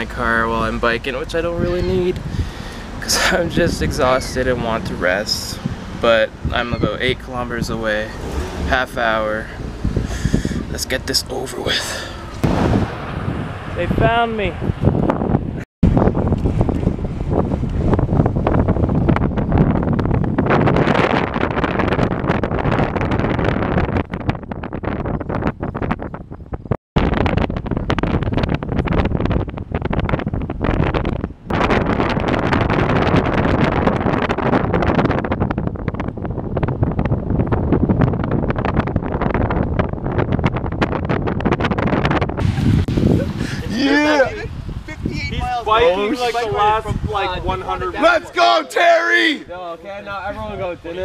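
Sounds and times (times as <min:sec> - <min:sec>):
wind rushing over microphone: 0:00.0 - 0:51.0.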